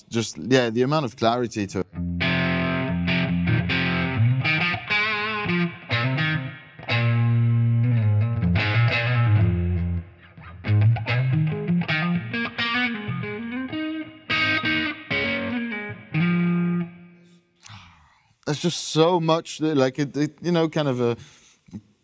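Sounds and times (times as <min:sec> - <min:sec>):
distorted electric guitar riff: 0:02.0 - 0:17.3.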